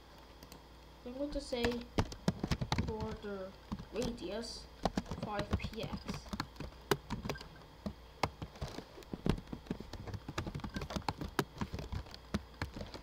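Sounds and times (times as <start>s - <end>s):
keyboard typing clicks: 4.8s - 8.4s, 10.0s - 13.0s.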